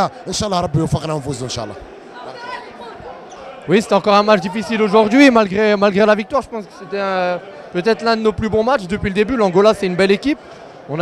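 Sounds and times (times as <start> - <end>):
background chatter of people: 0.0 - 11.0
man speaking close to microphone: 3.7 - 11.0.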